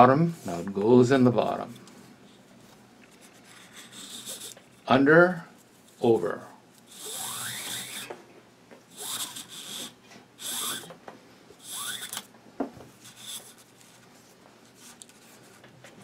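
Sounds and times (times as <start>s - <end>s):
cord rasping through weave: 6.9s - 8.1s, 11.6s - 12.2s.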